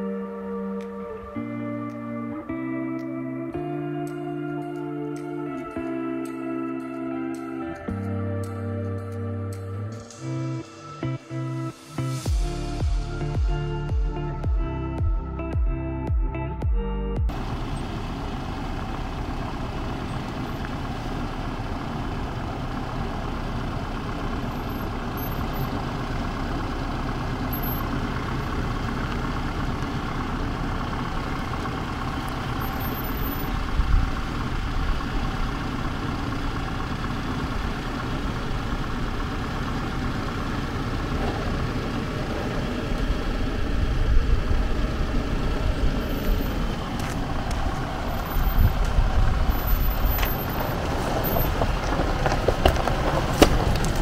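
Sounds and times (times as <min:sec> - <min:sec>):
diesel engine running at low revs: 0:00.0 - 0:54.0
low rumbles: 0:00.0 - 0:54.0.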